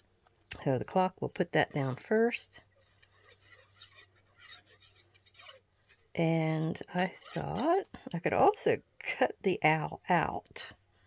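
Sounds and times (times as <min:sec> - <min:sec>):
pen scratching on paper: 0:02.8 - 0:07.9.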